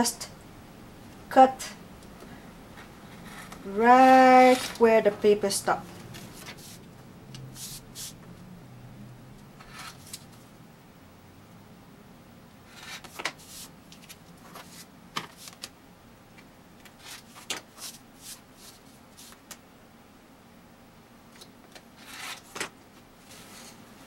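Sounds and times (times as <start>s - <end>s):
paper and fabric rustling: 4.2s - 5.2s.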